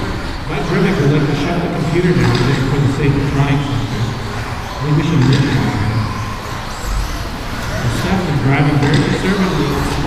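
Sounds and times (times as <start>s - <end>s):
electric rc cars running: 0.0s - 10.0s.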